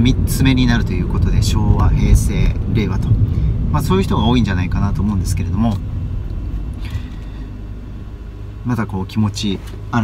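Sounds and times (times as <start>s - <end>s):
car engine rumble inside cabin: 0.0s - 10.0s.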